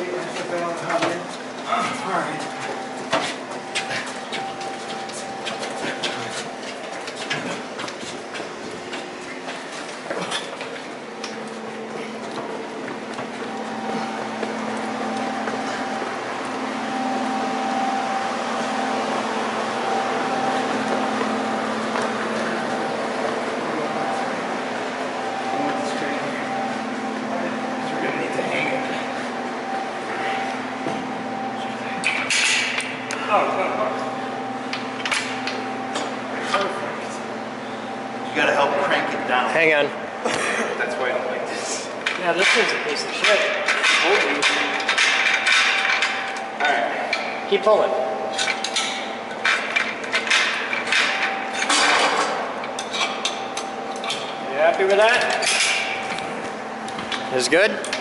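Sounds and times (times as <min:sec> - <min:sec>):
machine hum: 0:00.0 - 0:58.0.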